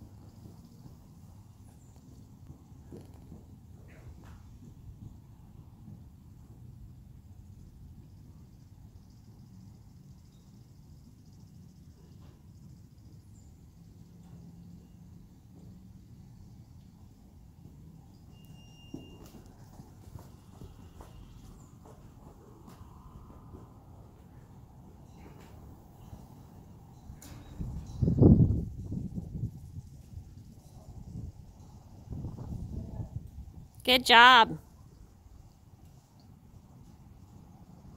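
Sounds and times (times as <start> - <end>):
horse hoofbeats on sand: 0.0 - 6.6, 17.6 - 24.1.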